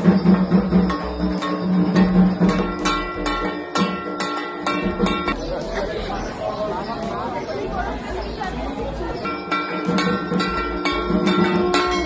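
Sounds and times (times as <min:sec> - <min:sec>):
people chattering: 0:01.0 - 0:12.0.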